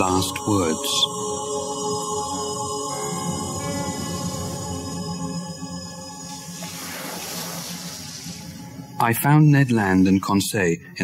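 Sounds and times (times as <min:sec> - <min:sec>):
low dark background music: 0:00.0 - 0:11.0
rushing water-like sound effect: 0:06.3 - 0:08.9.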